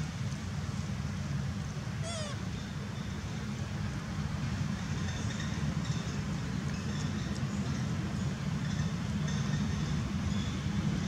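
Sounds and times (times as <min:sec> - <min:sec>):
low outdoor rumble: 0:00.0 - 0:11.0
high-pitched animal call: 0:02.0 - 0:02.4.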